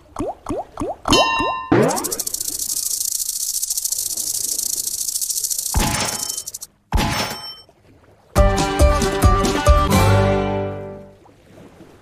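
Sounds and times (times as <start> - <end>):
rapid high-pitched ticking rattle: 1.8 - 6.7
short chiming tones: 5.2 - 6.7.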